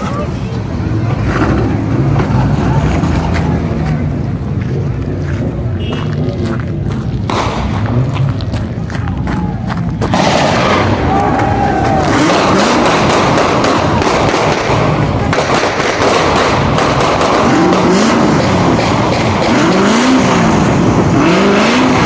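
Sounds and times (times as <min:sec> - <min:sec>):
car engines revving: 0:00.0 - 0:22.0
crowd voices: 0:00.0 - 0:22.0
sharp pops and bangs: 0:07.2 - 0:08.4, 0:09.9 - 0:20.4.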